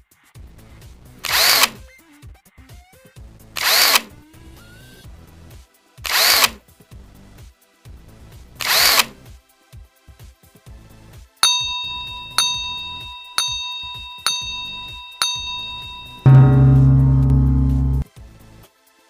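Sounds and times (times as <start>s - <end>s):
ringing countdown beeps: 11.4s - 18.0s.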